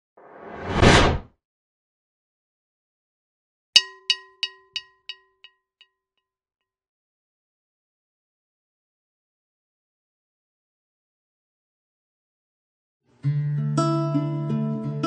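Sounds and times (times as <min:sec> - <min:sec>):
whoosh: 0:00.2 - 0:01.3
bell-like ding echoes: 0:03.8 - 0:05.5.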